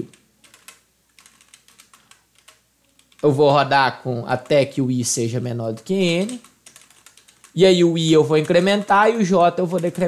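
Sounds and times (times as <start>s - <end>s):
keyboard typing: 0.0s - 3.6s, 4.2s - 10.0s.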